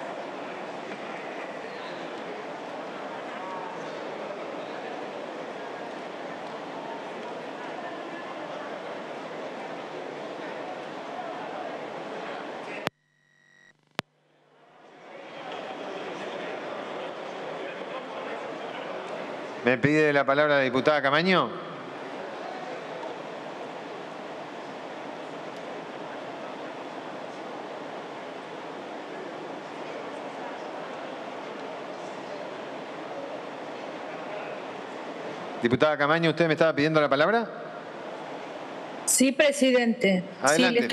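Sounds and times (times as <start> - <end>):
occupied hall background noise: 0.0 - 13.0, 14.0 - 40.9.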